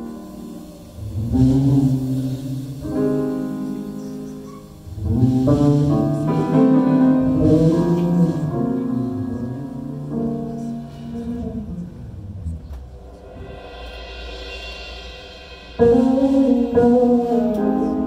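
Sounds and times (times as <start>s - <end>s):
jazz band playing: 0.0s - 14.0s, 15.7s - 18.0s.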